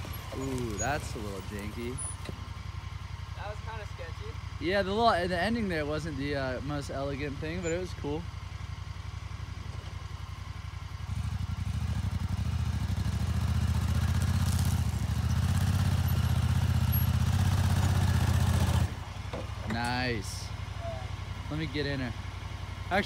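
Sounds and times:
engine rumbling at low speed: 0.0 - 23.0.

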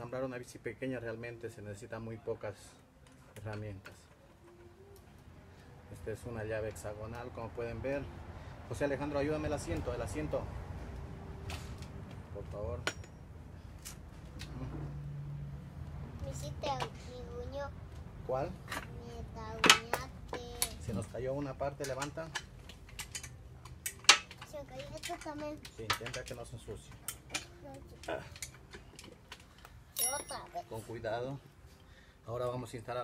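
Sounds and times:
bicycle parts and tools clicking: 3.0 - 5.3, 10.9 - 14.7, 19.6 - 30.5
child speaking: 16.2 - 17.8, 18.8 - 21.1, 24.4 - 25.8, 27.3 - 28.4, 30.0 - 30.9.

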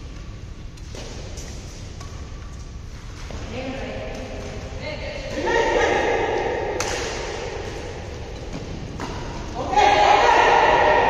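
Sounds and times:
racket hitting shuttlecock: 4.1 - 9.8.

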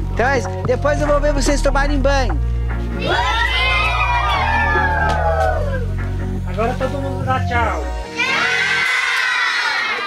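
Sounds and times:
children shouting in chorus: 3.0 - 5.8, 8.1 - 10.0.

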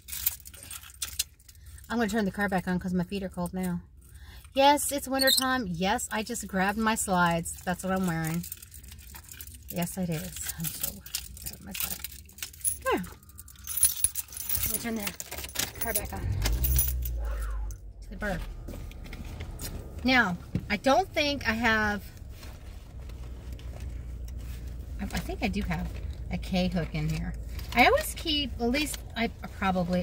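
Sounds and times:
keys jangling: 10.5 - 17.7.

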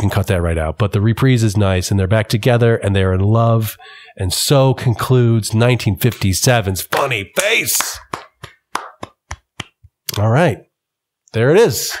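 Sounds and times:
hand clapping: 6.9 - 10.2.

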